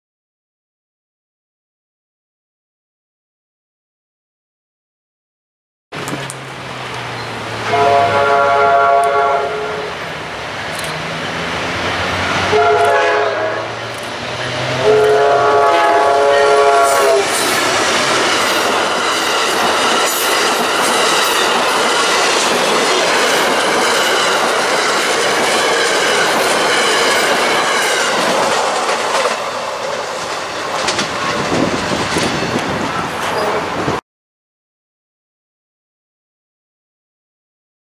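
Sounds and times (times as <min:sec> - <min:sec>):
train cars rolling on rails: 0:06.0 - 0:34.0
train horn blowing: 0:07.6 - 0:10.0, 0:12.3 - 0:17.8.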